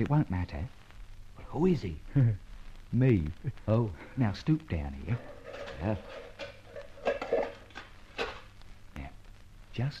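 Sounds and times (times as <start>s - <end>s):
metal clanking: 5.2s - 8.4s.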